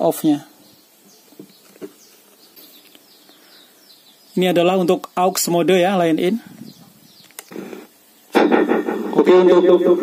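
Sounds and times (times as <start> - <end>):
man speaking: 4.4 - 6.5, 8.4 - 10.0.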